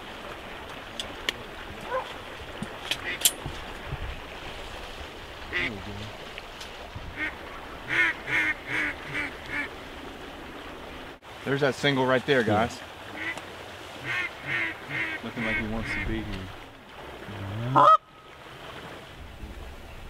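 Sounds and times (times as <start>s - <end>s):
geese honking: 7.2s - 9.7s, 14.0s - 16.1s, 17.7s - 18.1s.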